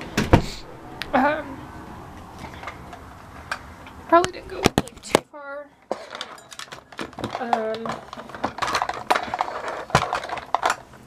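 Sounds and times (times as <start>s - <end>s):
rustling: 5.9s - 11.0s
small hard objects clattering: 5.9s - 11.0s.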